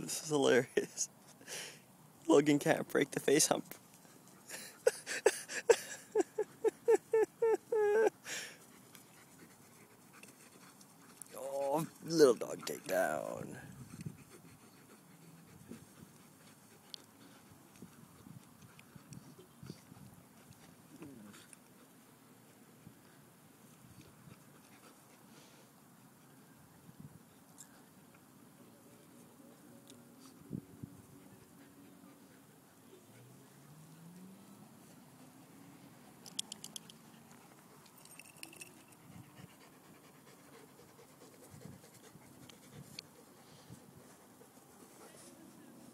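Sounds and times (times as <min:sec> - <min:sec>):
dog panting: 0:08.5 - 0:23.2, 0:30.0 - 0:35.5, 0:36.4 - 0:45.9
faint clicks: 0:36.2 - 0:38.7.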